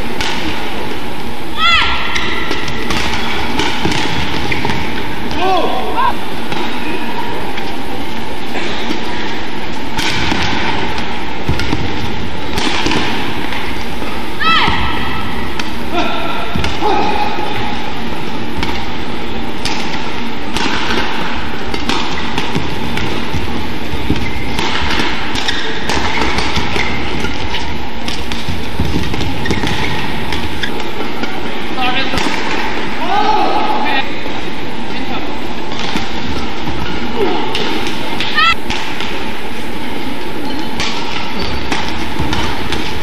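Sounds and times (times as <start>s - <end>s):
racket hitting shuttlecock: 0.1s - 0.6s, 1.9s - 5.6s, 9.8s - 17.8s, 18.4s - 31.4s, 32.1s - 32.9s, 35.7s - 39.4s, 40.6s - 43.0s
arena noise with voices: 4.5s - 10.0s, 29.6s - 41.7s
sneaker squeaking on court: 23.9s - 31.2s, 40.3s - 42.7s.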